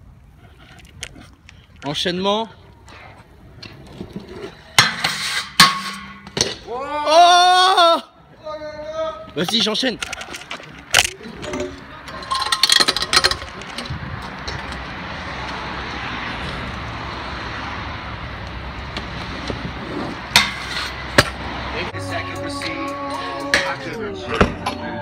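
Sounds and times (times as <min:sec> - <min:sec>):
rushing street noise: 0:00.0 - 0:25.0
camera handling knocks and clatter: 0:10.0 - 0:11.2.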